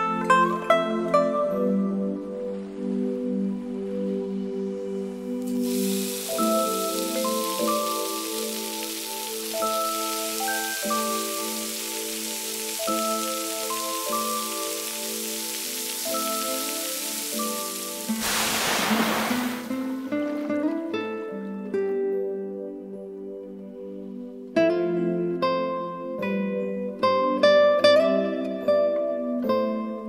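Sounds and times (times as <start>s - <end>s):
background music with mallet notes: 0.0s - 18.2s
liquid hissing in hot wok: 5.4s - 20.6s
oil sizzling in a wok: 5.4s - 20.8s.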